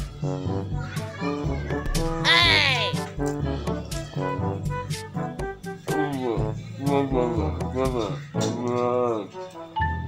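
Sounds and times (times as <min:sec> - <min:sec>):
upbeat background music: 0:00.0 - 0:10.0
children's voices: 0:00.7 - 0:04.2.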